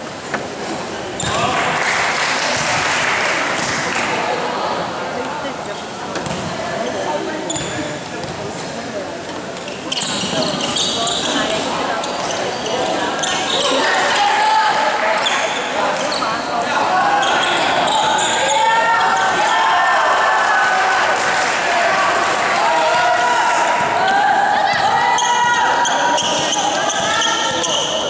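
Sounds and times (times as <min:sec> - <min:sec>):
sneakers squeaking: 0:01.2 - 0:01.5, 0:07.4 - 0:08.7, 0:09.6 - 0:14.0, 0:15.2 - 0:19.5, 0:23.8 - 0:28.0
ball bouncing on wooden court: 0:06.2 - 0:06.5
people calling out: 0:12.7 - 0:21.0, 0:21.6 - 0:28.0.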